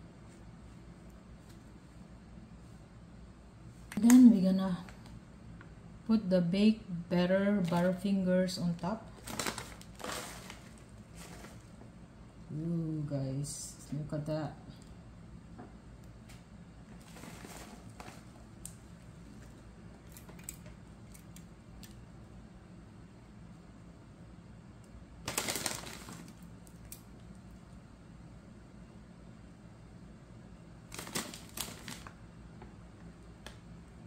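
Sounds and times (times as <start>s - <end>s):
low steady hum: 0.0s - 34.0s
plastic bag crinkling: 9.1s - 11.8s, 16.9s - 18.7s, 25.2s - 26.9s, 30.9s - 32.2s.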